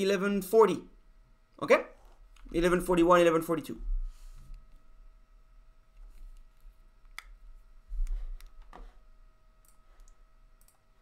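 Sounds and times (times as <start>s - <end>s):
faint steady whine: 0.0s - 11.0s.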